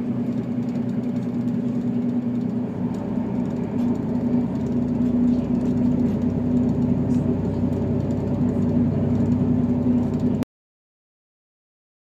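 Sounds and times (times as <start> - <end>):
railcar engine drone: 0.0 - 10.4
train wheels rumbling on track: 0.0 - 10.4.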